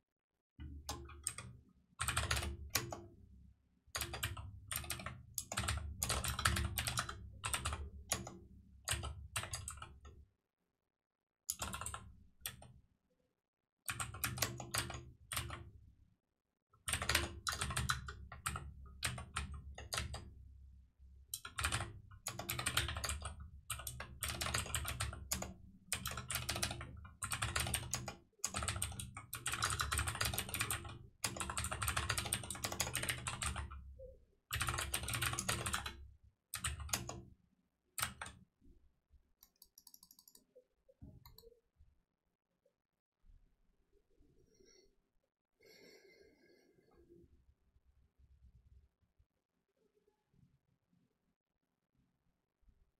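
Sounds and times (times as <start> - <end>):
typing on computer keyboard: 0.6 - 3.1, 3.9 - 10.1, 11.5 - 12.7, 13.9 - 15.7, 16.8 - 20.3, 21.3 - 37.3, 38.0 - 38.4, 39.4 - 41.6.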